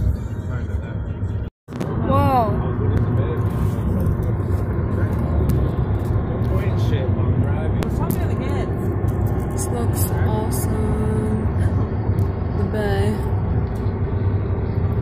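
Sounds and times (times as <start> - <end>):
road rumble inside moving car: 0.0 - 15.0.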